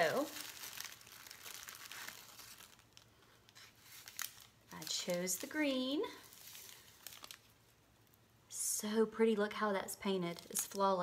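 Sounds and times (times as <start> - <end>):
cellophane wrapper crinkling: 0.0 - 8.2, 10.3 - 11.0.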